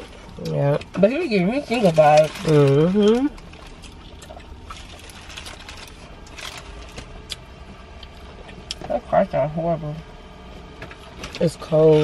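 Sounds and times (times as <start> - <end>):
low rumble inside car: 0.0 - 12.0
paper wrapper rustling: 1.6 - 7.2.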